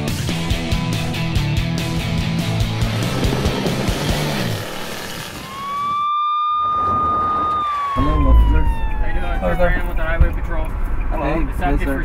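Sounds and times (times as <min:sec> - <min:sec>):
rock music: 0:00.0 - 0:04.7
police siren: 0:05.3 - 0:10.4.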